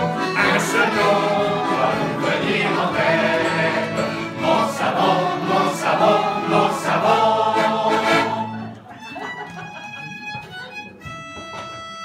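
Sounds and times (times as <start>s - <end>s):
voices singing jingle in chorus: 0.0s - 8.7s.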